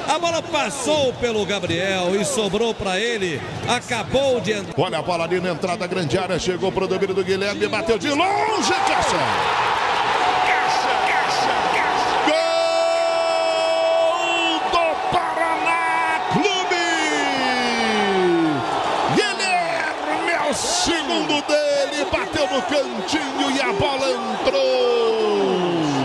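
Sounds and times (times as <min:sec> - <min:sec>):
crowd cheering: 0:08.0 - 0:26.0
commentator shouting: 0:10.4 - 0:26.0.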